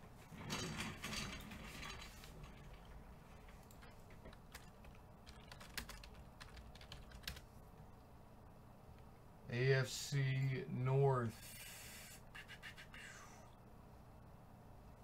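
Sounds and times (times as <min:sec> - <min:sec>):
faint keyboard typing clicks: 0:03.5 - 0:07.5.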